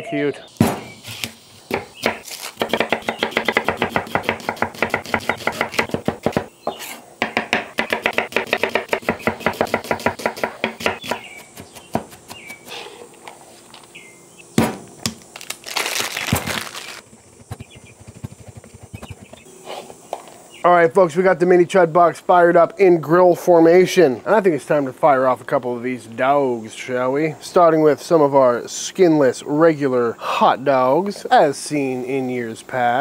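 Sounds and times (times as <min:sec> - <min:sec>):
knife chopping on wooden board: 0:00.6 - 0:12.6.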